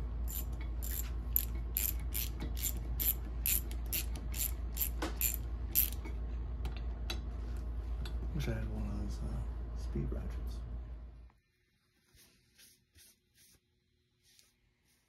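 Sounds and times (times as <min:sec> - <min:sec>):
hand ratchet clicking: 0:00.3 - 0:06.0.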